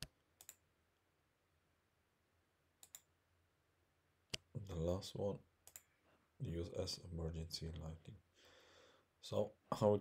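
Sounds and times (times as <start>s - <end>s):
computer mouse clicks: 0.0s - 0.6s, 2.8s - 3.1s, 5.6s - 5.9s.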